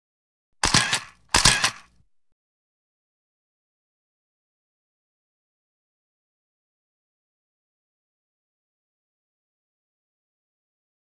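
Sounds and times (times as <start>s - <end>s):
camera shutter snap: 0.6s - 2.0s.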